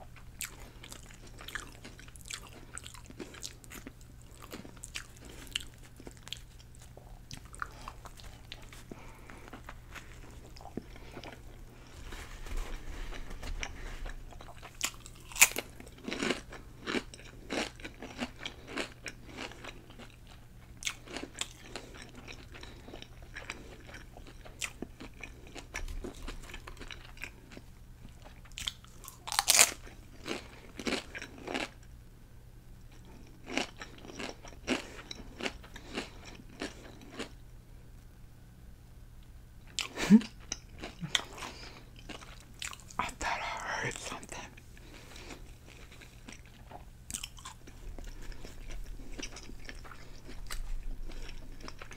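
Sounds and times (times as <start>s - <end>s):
crisp chips crunching: 0.4s - 27.6s, 28.2s - 31.8s, 33.0s - 37.4s, 39.8s - 51.9s.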